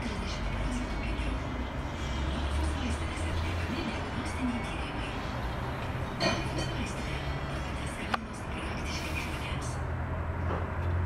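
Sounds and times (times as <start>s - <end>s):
faint indistinct voices: 0.0s - 9.9s
traffic noise: 0.0s - 11.0s.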